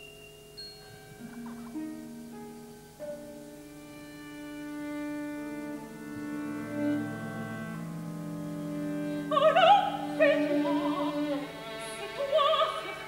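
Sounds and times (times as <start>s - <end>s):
woman singing operatically: 9.2s - 13.0s.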